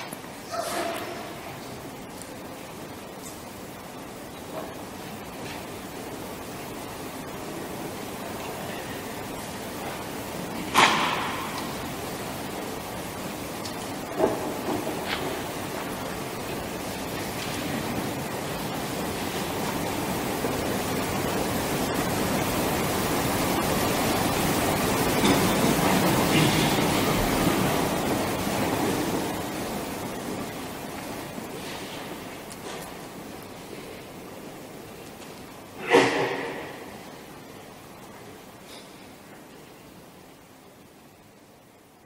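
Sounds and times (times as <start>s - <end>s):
room noise hiss: 0.0s - 42.0s.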